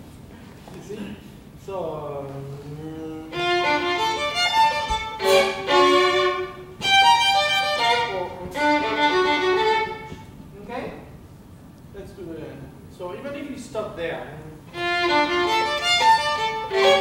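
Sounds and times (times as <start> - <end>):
solo violin bowed notes: 2.7 - 10.4, 14.7 - 17.0.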